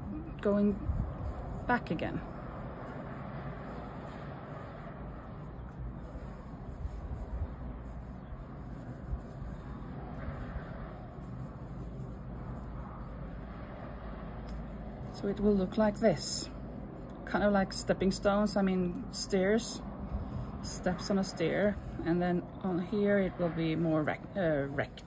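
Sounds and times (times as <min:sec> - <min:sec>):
faint rustles of yarn: 0:00.0 - 0:25.0.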